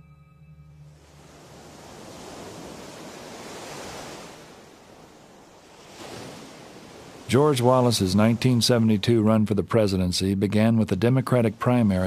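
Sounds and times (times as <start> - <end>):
ocean waves washing onto beach: 0.9 - 12.0.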